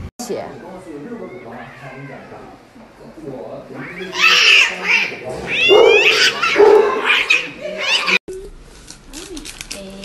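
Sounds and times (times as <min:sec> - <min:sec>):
cat yowling: 0:00.5 - 0:02.5, 0:03.8 - 0:08.2.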